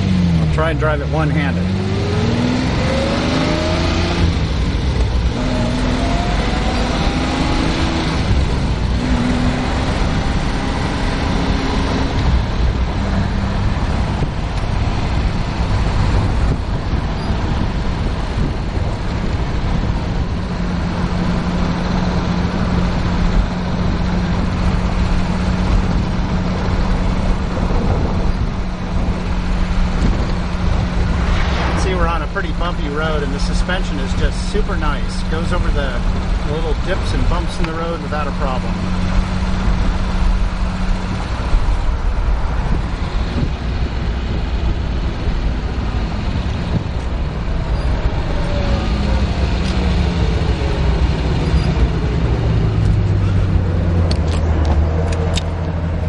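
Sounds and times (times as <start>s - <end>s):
car engine accelerating: 0.0s - 56.0s
road noise: 0.0s - 56.0s
wind noise: 1.7s - 37.6s, 38.7s - 56.0s.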